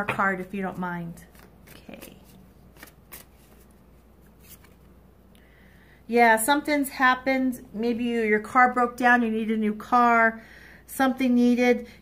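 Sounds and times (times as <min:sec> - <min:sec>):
cards being shuffled: 0:01.2 - 0:04.9.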